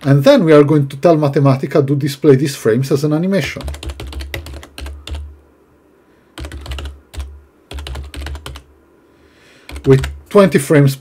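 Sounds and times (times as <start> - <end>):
typing on computer keyboard: 3.6 - 5.3, 6.4 - 8.7, 9.7 - 10.2.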